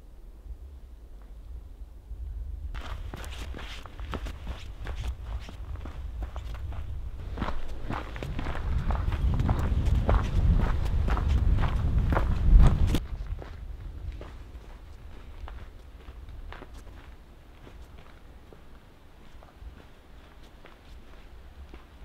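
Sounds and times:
footsteps on snow: 0:02.8 - 0:22.0.

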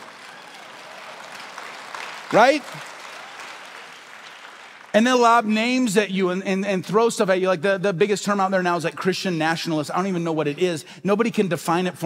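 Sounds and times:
congregation applauding: 0:00.0 - 0:05.9.

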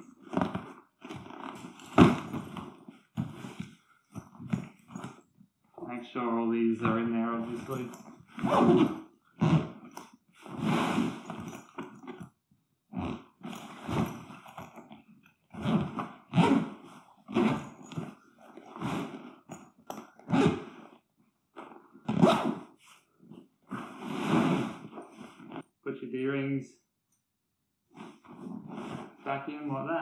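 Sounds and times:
zipper rasping closed: 0:00.0 - 0:05.2, 0:06.8 - 0:12.3, 0:12.9 - 0:21.0, 0:21.6 - 0:25.7, 0:28.0 - 0:29.2
bag fabric rustling: 0:00.0 - 0:05.4, 0:06.7 - 0:12.3, 0:13.0 - 0:21.0.

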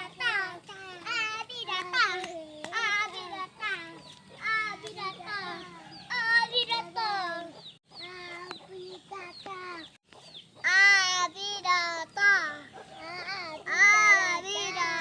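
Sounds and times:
toddlers babbling and calling out: 0:00.0 - 0:10.0, 0:10.6 - 0:15.0.

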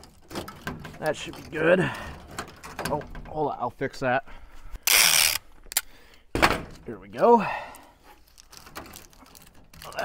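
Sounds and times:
tape ripped off a roll: 0:04.9 - 0:05.4.

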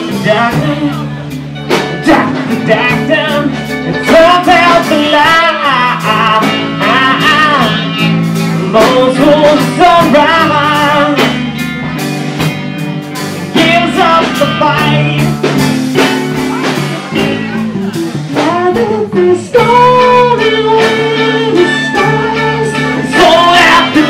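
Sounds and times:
person singing: 0:00.0 - 0:12.1, 0:13.2 - 0:24.0
electric bass: 0:00.0 - 0:24.0
electric guitar: 0:00.0 - 0:24.0.

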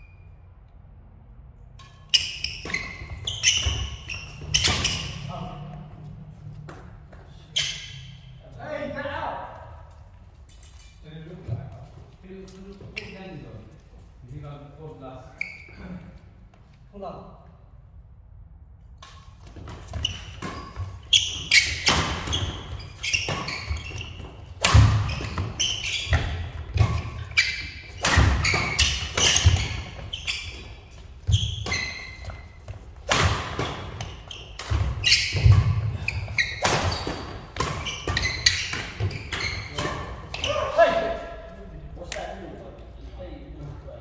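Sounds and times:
court shoes squeaking: 0:00.0 - 0:01.0, 0:01.6 - 0:08.5, 0:09.5 - 0:14.2, 0:15.2 - 0:16.7, 0:19.0 - 0:41.6
racket striking shuttlecock: 0:19.9 - 0:30.1, 0:31.4 - 0:40.3.

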